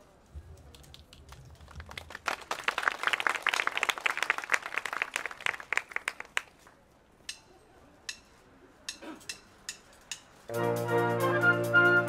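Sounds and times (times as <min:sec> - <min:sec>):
crowd applause: 0:01.4 - 0:06.5.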